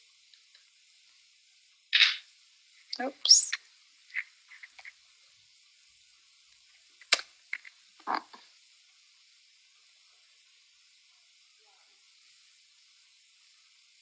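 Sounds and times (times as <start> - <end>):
sharp click: 2.0 - 2.2.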